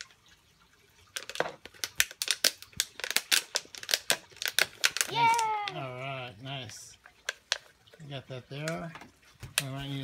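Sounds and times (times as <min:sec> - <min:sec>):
plastic bottle crinkling: 0:01.0 - 0:06.0, 0:07.1 - 0:10.0.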